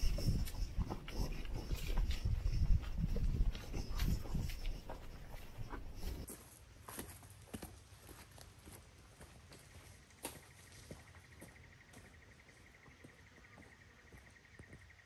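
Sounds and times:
fast-pulsing insect call: 0:00.0 - 0:06.3
footsteps on dry leaves and twigs: 0:00.0 - 0:12.2.

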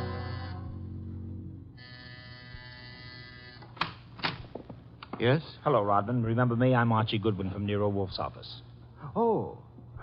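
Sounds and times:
door buzzer buzzing: 0:00.0 - 0:04.1.

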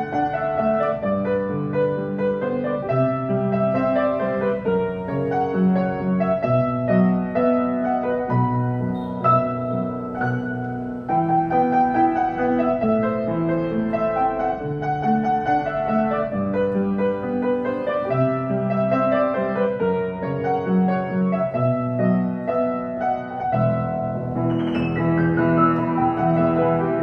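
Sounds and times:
piano playing: 0:00.0 - 0:27.0.

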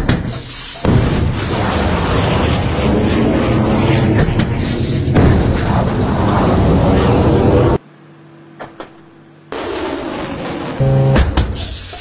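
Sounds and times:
missile launch roar: 0:00.8 - 0:07.8.

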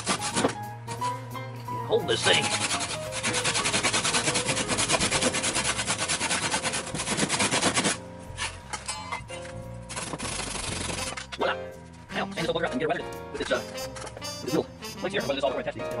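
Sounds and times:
hand saw cutting wood: 0:00.0 - 0:00.6, 0:02.2 - 0:08.6, 0:09.9 - 0:11.3.

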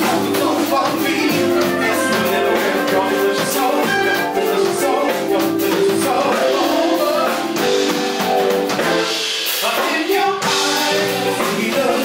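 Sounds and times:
singers' voices: 0:00.0 - 0:07.8, 0:09.6 - 0:12.0
live funk band playing: 0:00.0 - 0:12.0.

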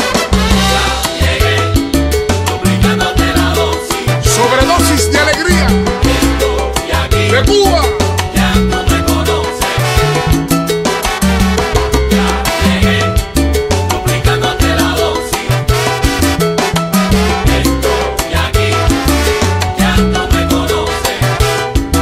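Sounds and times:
instrumental salsa dance music: 0:00.0 - 0:22.0.

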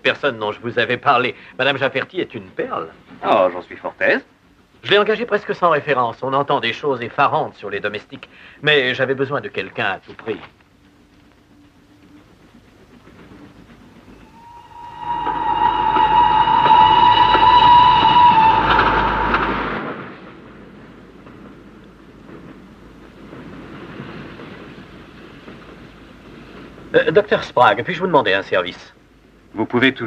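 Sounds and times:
train carriages rumbling: 0:00.0 - 0:30.0
train whistle: 0:14.1 - 0:20.0.

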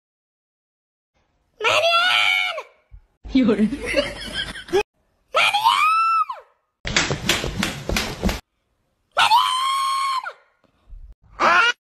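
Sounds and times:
loud high-pitched scream: 0:09.2 - 0:10.5.

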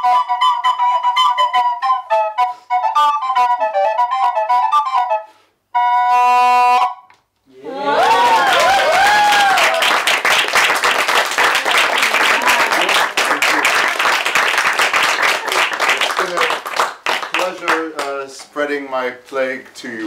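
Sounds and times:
people whooping: 0:07.5 - 0:10.2, 0:11.4 - 0:14.1
audience clapping and cheering: 0:07.6 - 0:18.3.

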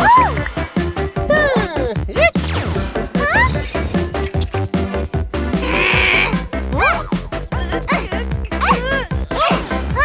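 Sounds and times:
cartoon background music: 0:00.0 - 0:10.0
cartoon character whining cry: 0:07.6 - 0:09.6.

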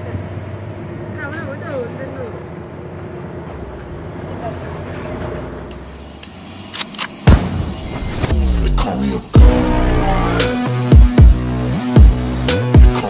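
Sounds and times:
diesel engine under load: 0:00.0 - 0:07.8
loud sharp hits: 0:07.2 - 0:08.8.

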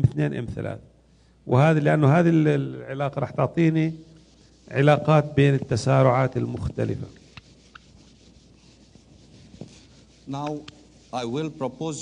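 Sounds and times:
eraser wiping whiteboard: 0:03.6 - 0:12.0.

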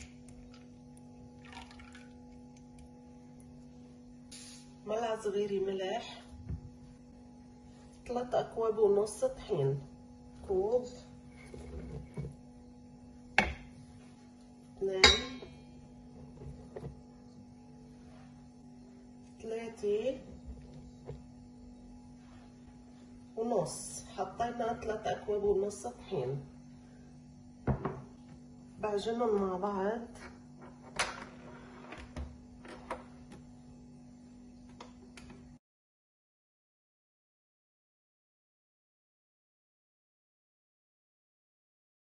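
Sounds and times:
faint steady hum: 0:00.0 - 0:35.6
mug knocking on kitchenware: 0:15.0 - 0:15.5.

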